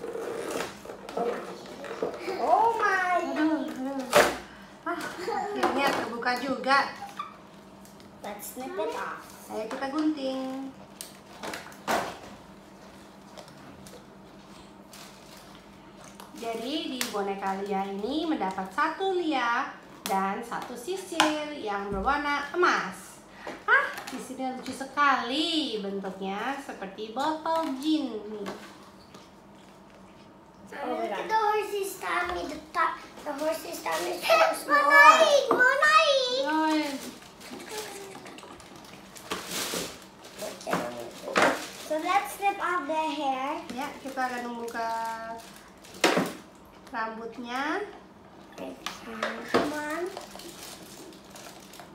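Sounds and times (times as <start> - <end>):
packaging rustling: 36.2 - 42.8, 43.8 - 46.4, 49.8 - 51.9.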